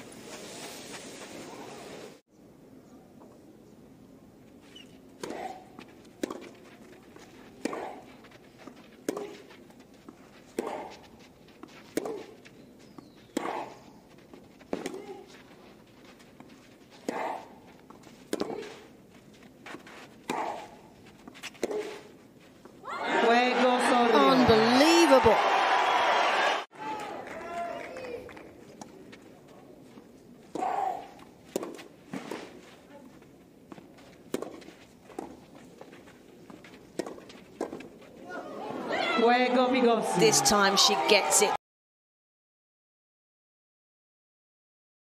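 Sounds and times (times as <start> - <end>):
racket hitting tennis ball: 4.8 - 12.4, 13.3 - 13.8, 14.6 - 15.4, 16.4 - 18.9, 19.7 - 24.8, 30.5 - 32.8, 33.8 - 38.0
tennis player grunting: 20.3 - 20.8, 30.5 - 31.2
crowd cheering: 22.8 - 28.6, 38.2 - 41.6.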